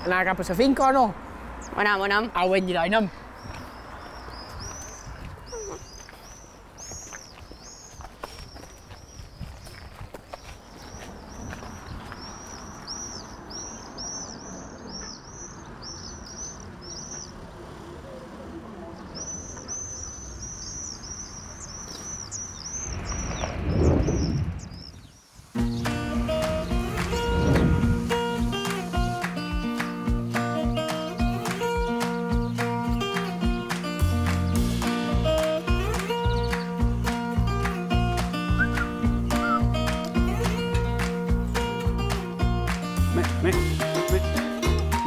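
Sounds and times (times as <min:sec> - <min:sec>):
swifts screaming: 0:19.1 - 0:29.0
rushing whoosh: 0:22.6 - 0:29.2.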